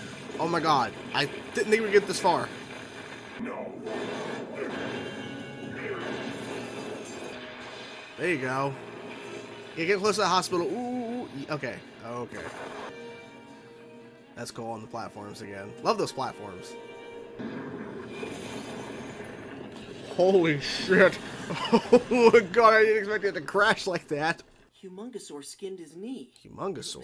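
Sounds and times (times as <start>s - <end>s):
crashing sound effects: 0.0s - 10.7s, 17.4s - 22.2s
dramatic score: 0.0s - 24.0s
background music: 4.4s - 18.6s.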